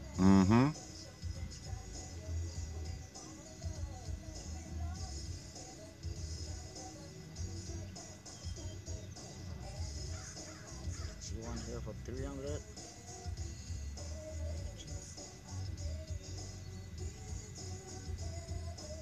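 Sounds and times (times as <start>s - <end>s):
gulls calling: 7.8s - 12.5s.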